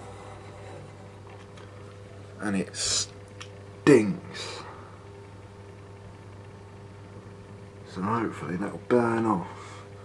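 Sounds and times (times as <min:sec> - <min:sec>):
faint low electrical hum: 0:00.0 - 0:10.0.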